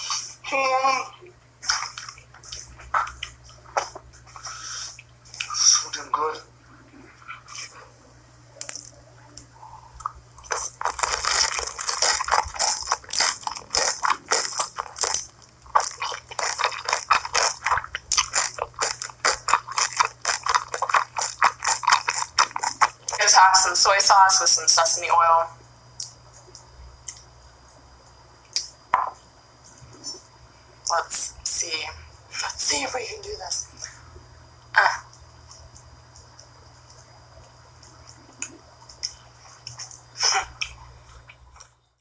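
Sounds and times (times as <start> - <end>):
crisp chewing and mouth sounds: 1.6 - 6.0, 8.6 - 23.7.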